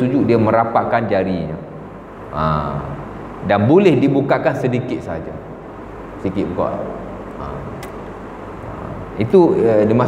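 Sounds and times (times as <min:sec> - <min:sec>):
low background hum: 0:00.0 - 0:10.0
man speaking: 0:02.3 - 0:05.5, 0:06.2 - 0:07.9, 0:08.7 - 0:10.0
sharp click: 0:07.8 - 0:08.1.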